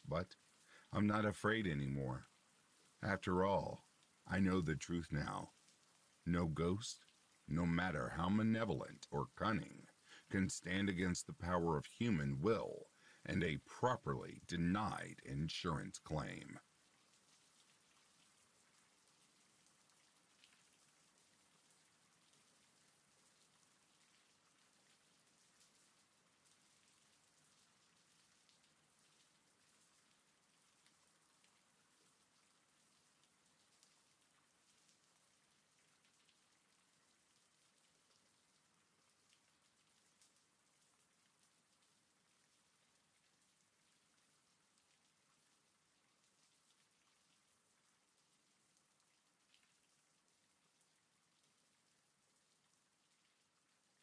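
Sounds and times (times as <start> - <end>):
rain hiss: 0.0 - 54.0
raindrop ticks: 0.0 - 54.0.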